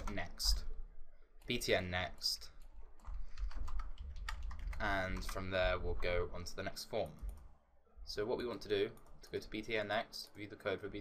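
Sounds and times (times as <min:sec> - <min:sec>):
computer keyboard typing: 0:00.0 - 0:00.6, 0:02.6 - 0:06.2, 0:07.0 - 0:07.5, 0:08.4 - 0:09.6.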